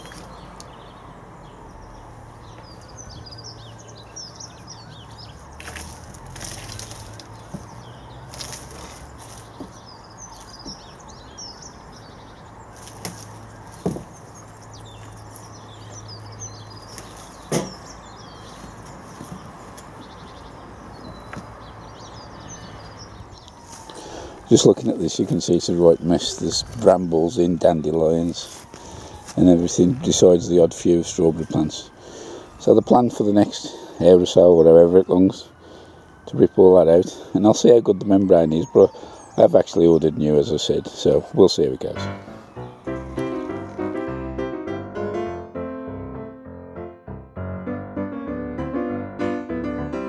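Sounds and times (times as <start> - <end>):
small birds chirping: 0.0 - 44.0
mesh cover rustling: 5.6 - 9.7
sharp knocks on wood: 13.8 - 14.1, 17.5 - 17.8.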